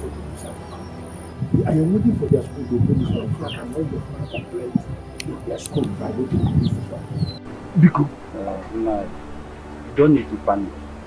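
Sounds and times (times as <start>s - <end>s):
man talking: 0.0s - 0.7s, 1.4s - 9.1s, 9.9s - 10.7s
background music: 0.0s - 11.0s.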